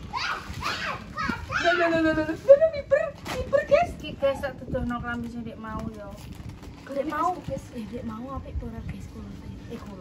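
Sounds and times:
young child speaking and calling out: 0:00.1 - 0:01.9.

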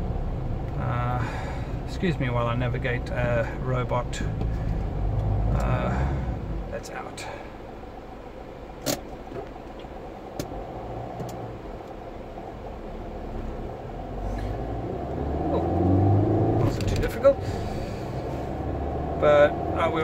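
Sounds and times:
car engine and road noise: 0:00.0 - 0:20.0.

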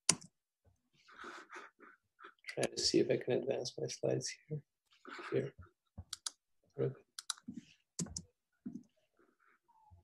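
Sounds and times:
computer mouse clicks: 0:06.1 - 0:06.4, 0:07.2 - 0:08.3.

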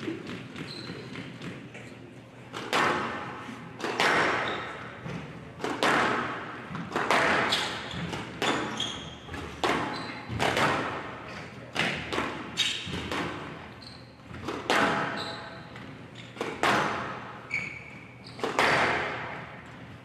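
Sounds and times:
racket hitting squash ball: 0:00.0 - 0:01.8, 0:02.5 - 0:20.0
short high shoe squeaks: 0:00.6 - 0:01.4, 0:04.3 - 0:05.0, 0:07.5 - 0:10.3, 0:13.7 - 0:14.3, 0:14.9 - 0:16.4, 0:17.4 - 0:19.0.

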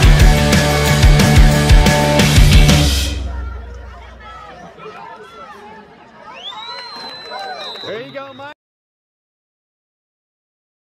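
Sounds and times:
crowd chatter: 0:02.0 - 0:08.5
whistle blast: 0:06.3 - 0:08.6.

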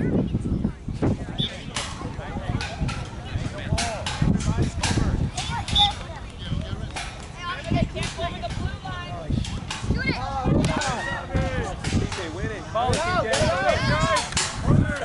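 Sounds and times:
spectators and players calling out: 0:01.2 - 0:15.0.

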